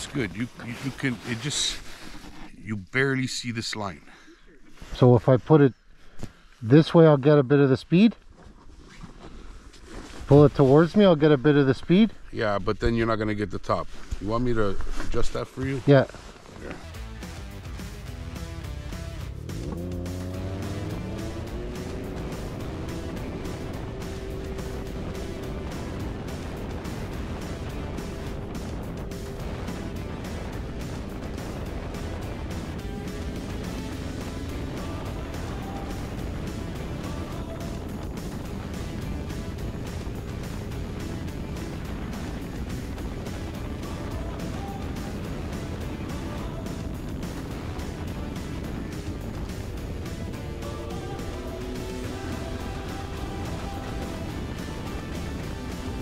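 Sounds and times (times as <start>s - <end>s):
snowmobile engine revving: 0.0s - 1.9s, 17.0s - 56.0s
background music: 16.7s - 56.0s
rush of track and wind: 19.6s - 56.0s.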